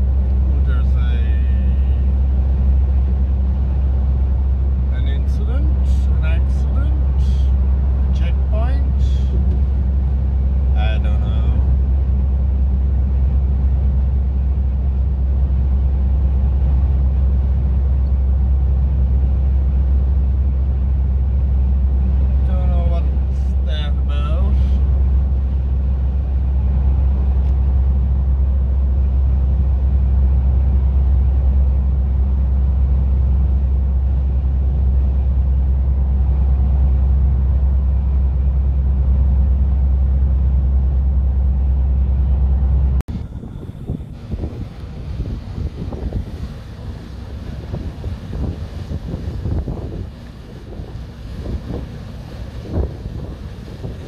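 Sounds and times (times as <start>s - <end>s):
wind buffeting microphone: 0.0s - 23.6s, 24.4s - 54.0s
water rushing along ship's side: 0.0s - 54.0s.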